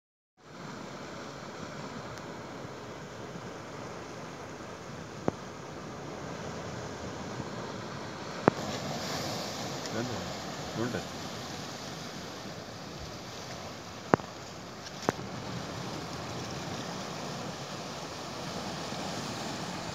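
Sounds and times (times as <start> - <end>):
surf: 0.4 - 19.9.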